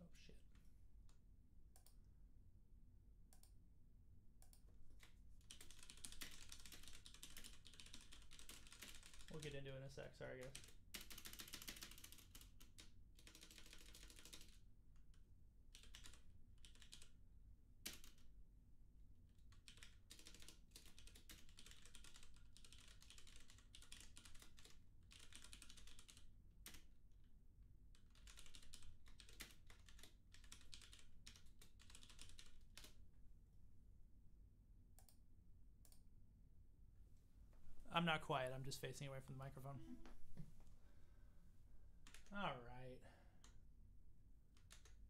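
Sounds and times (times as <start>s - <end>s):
faint keyboard typing: 0.5s - 2.1s, 3.2s - 3.6s, 4.4s - 18.4s, 19.3s - 33.1s, 34.9s - 35.2s, 35.8s - 36.1s, 41.9s - 43.7s, 44.4s - 45.0s.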